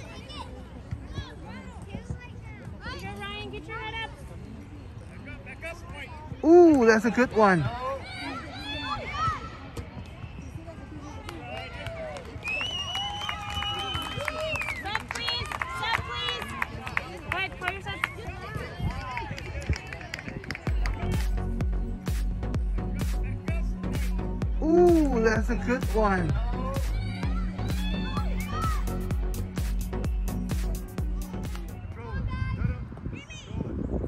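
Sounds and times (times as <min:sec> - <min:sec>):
music with heavy beat: 0:21.0 - 0:31.8.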